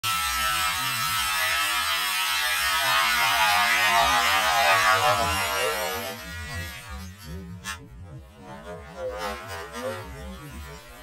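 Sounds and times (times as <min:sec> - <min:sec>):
electric ice auger whirring: 0:00.0 - 0:07.7.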